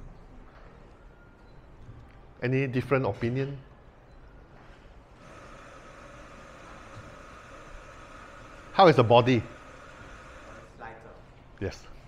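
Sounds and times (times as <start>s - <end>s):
faint mechanical hum: 0.0s - 12.0s.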